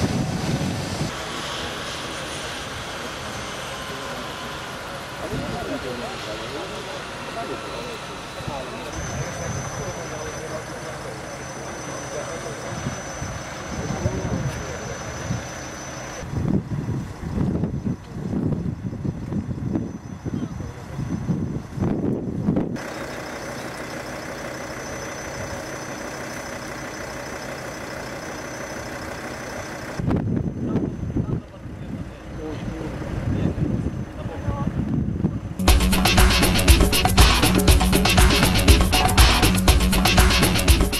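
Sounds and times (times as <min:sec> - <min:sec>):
thin high whine: 0:00.0 - 0:16.6, 0:22.7 - 0:31.6
vehicle engines idling: 0:00.0 - 0:40.9
people talking: 0:01.1 - 0:15.5, 0:20.3 - 0:21.2, 0:30.6 - 0:36.3.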